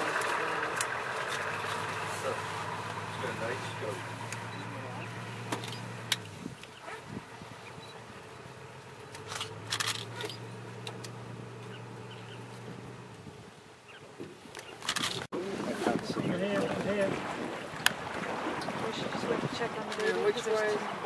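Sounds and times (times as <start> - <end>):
vehicle engine idling: 0.0 - 15.2.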